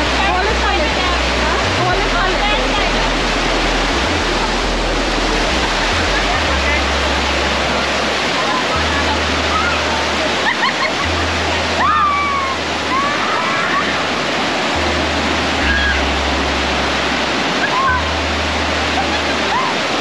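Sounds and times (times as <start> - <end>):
people's voices: 0.0 - 14.8
water rushing down rocks: 0.0 - 20.0
high cries: 11.6 - 14.2, 15.6 - 16.2.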